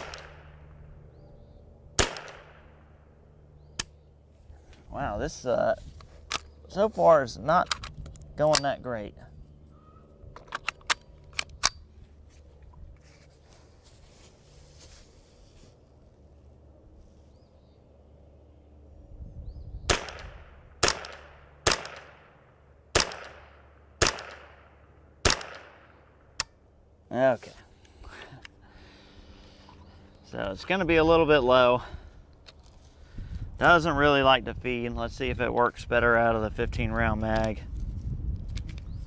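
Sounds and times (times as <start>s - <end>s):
rifle action clicks: 0.0s - 0.4s, 7.6s - 8.7s, 10.3s - 11.8s
rifle shots: 0.0s - 0.8s, 2.0s - 3.0s, 19.9s - 26.3s.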